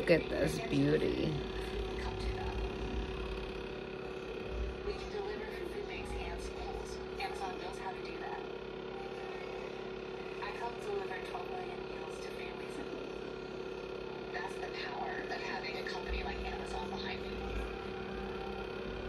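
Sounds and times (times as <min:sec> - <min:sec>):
faint indistinct speech: 0:00.0 - 0:19.0
steady machine hum: 0:00.0 - 0:19.0.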